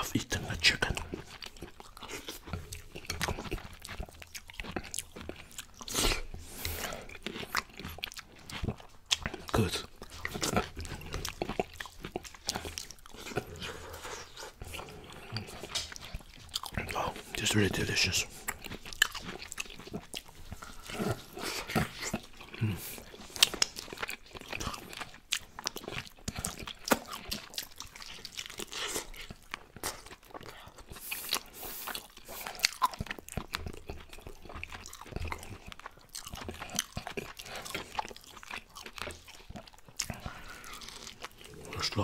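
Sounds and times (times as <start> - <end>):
open-mouth chewing and lip smacking: 0.0 - 42.0.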